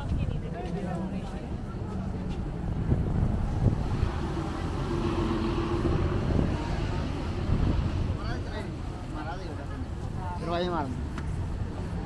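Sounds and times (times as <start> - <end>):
wind rumble on microphone: 0.0 - 9.2
bus passing with engine hum: 0.0 - 12.0
road traffic: 0.0 - 12.0.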